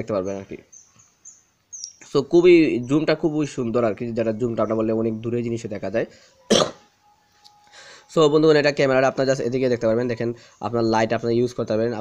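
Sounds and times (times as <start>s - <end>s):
faint steady tone: 3.8s - 11.0s
man clearing his throat: 6.5s - 6.9s.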